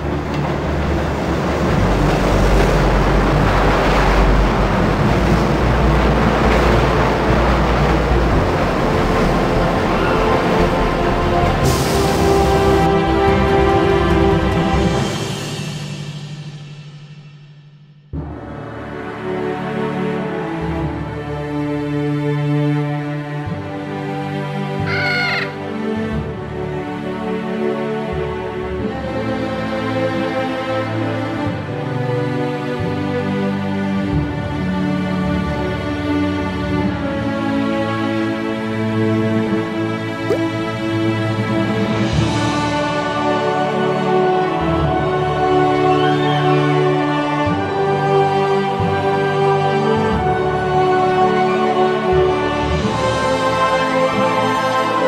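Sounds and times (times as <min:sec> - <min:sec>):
background film score music: 0:00.0 - 0:55.0
crow-like caw: 0:24.8 - 0:25.6.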